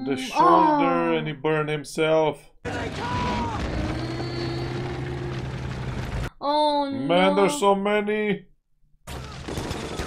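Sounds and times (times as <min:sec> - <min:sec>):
tank engines rumbling: 0:02.7 - 0:06.3.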